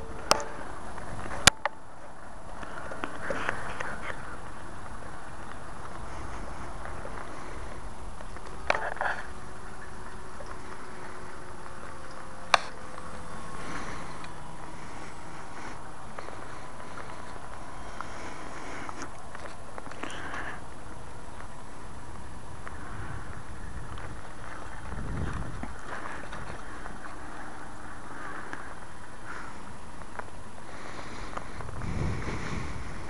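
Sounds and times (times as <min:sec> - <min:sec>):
distant model plane motor drone: 0:00.0 - 0:33.0
rushing background noise: 0:00.0 - 0:33.0.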